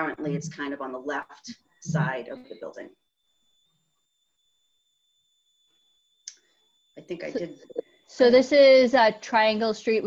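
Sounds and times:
high-pitched electronic whine: 0.0 - 10.0.

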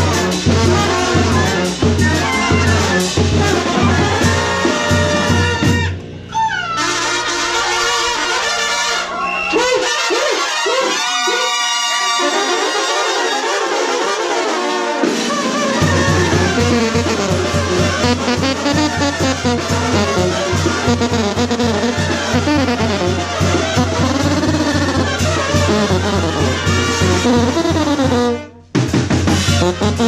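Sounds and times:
brass band playing: 0.0 - 30.0.

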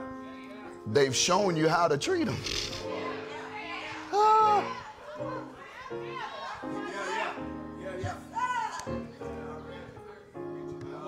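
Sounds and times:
person shouting: 4.0 - 4.8.

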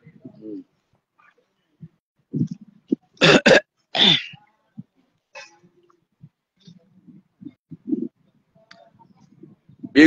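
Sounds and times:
person clearing throat: 3.2 - 4.4
person coughing: 3.2 - 4.4.

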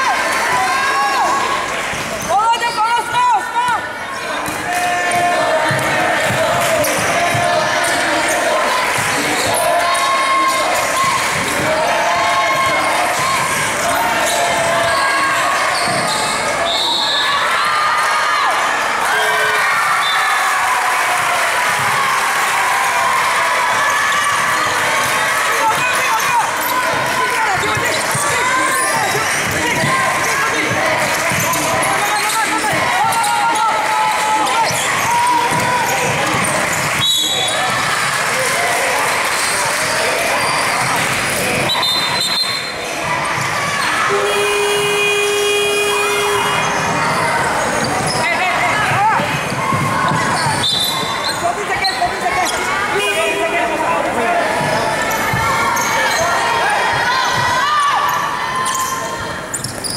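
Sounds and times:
chatter and shouts: 0.0 - 59.9
referee whistle blasts: 15.8 - 17.5, 37.0 - 37.6, 41.7 - 42.7, 50.5 - 52.0
steady horn: 44.1 - 46.6.

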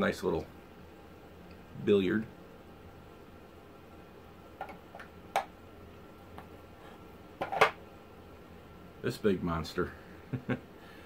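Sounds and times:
clicks and taps of hard objects: 4.6 - 5.5.

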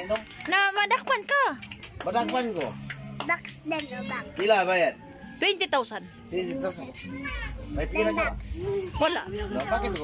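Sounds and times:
children's voices: 6.9 - 10.0.

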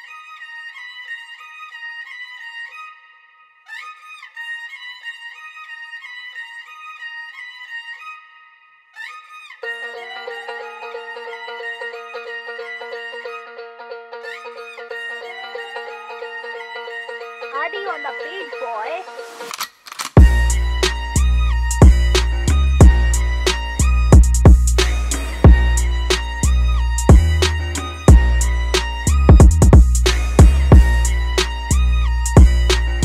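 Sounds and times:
high violin-like melody: 9.0 - 19.5, 20.2 - 33.0
hip-hop beat: 17.4 - 19.5, 20.2 - 33.0.

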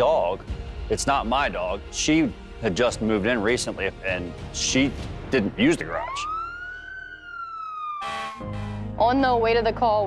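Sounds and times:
fire engine siren wailing: 5.8 - 9.0.

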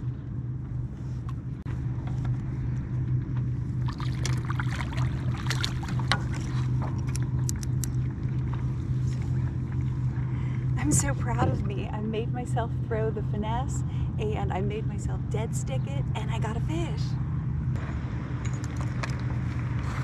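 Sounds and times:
motorboat engine drone: 0.0 - 20.0.

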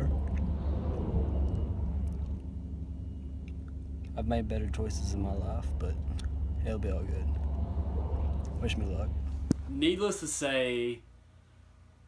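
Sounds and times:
truck engine rumbling: 0.0 - 10.4.

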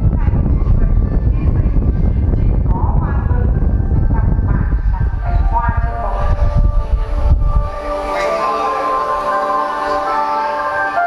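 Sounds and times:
held musical tones from loudspeakers: 0.0 - 11.0.

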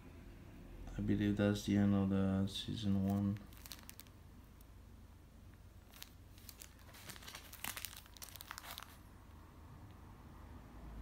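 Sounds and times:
plastic file crinkling: 2.7 - 4.7, 5.8 - 9.1.

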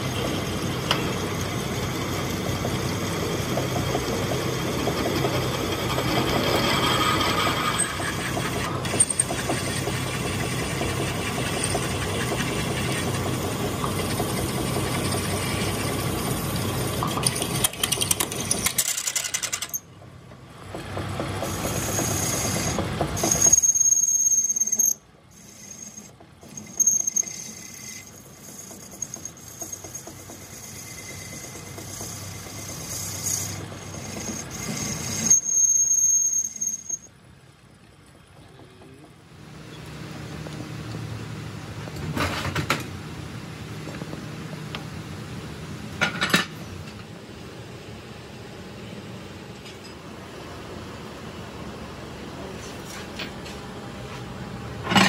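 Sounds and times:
tool squealing on metal: 5.6 - 13.2, 21.5 - 37.1
lathe drilling metal: 21.4 - 37.1.

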